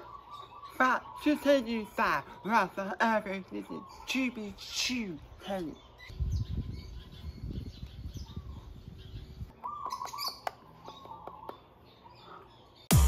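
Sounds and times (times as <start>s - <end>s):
birds chirping: 0.0s - 13.0s.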